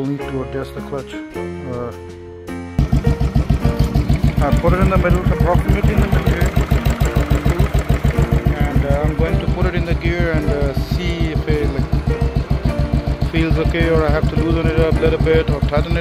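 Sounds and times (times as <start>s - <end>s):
motorcycle engine idling: 2.8s - 16.0s.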